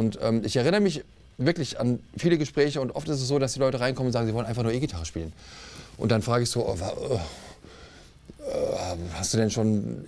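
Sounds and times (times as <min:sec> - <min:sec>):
man hesitating: 0:08.3 - 0:09.2.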